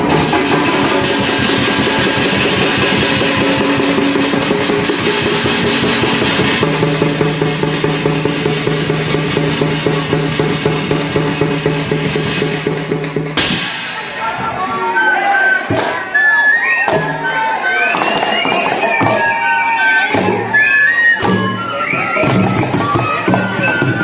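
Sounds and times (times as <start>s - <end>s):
hand drums and small percussion: 0.0s - 13.9s, 15.5s - 24.0s
drums beaten with sticks: 0.0s - 14.5s, 15.6s - 16.2s, 16.8s - 20.6s, 21.2s - 24.0s.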